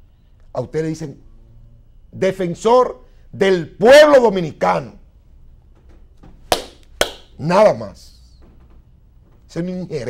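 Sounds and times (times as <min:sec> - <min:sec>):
sharp hand claps: 0:06.5 - 0:07.4.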